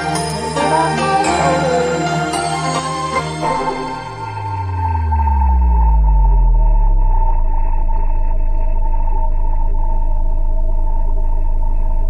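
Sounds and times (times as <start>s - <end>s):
sustained high synth note: 0.0s - 12.0s
synthesizer low tone sliding down: 0.0s - 12.0s.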